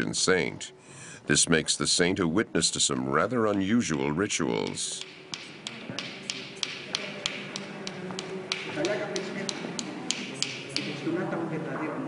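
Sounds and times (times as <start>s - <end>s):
sharp taps: 3.5s - 11.0s.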